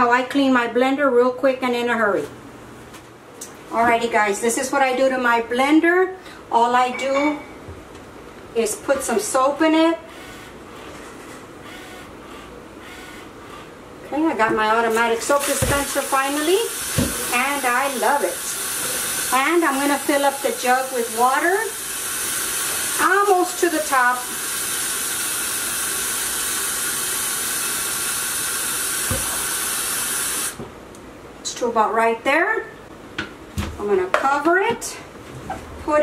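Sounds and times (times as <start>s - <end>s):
faint kitchen background noise: 0.0s - 25.1s, 30.5s - 36.0s
tap water filling a jug: 15.3s - 29.8s.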